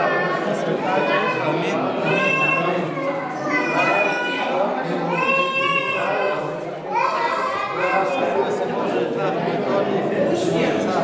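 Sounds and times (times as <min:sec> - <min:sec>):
baby crying: 0:00.0 - 0:08.2
crowd chatter: 0:00.0 - 0:11.0.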